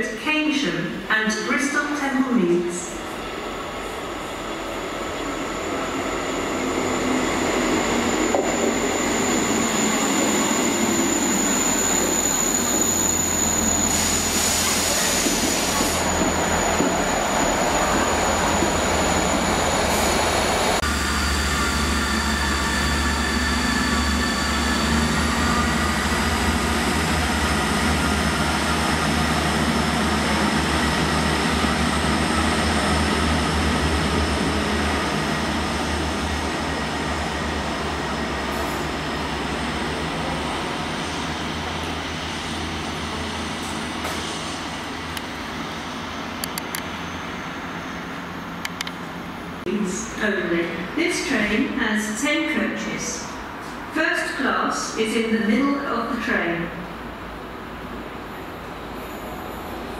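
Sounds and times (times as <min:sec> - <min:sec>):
rising engine whine: 0:04.2 - 0:14.4, 0:16.0 - 0:49.7
train wheels squealing: 0:04.5 - 0:29.3, 0:45.6 - 0:49.4
burst of hiss: 0:13.8 - 0:16.1.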